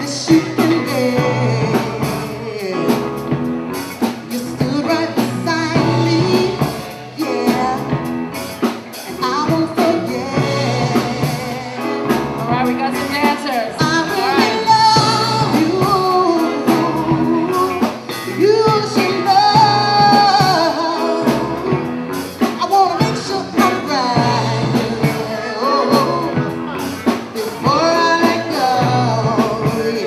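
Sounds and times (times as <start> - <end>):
lead singing: 0.0 - 30.0
live soul band playing: 0.0 - 30.0.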